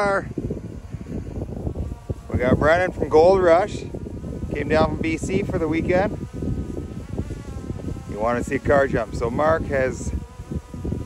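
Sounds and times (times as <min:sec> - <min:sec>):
drone buzzing whine: 0:00.0 - 0:11.0
wind rumble on microphone: 0:00.0 - 0:11.0.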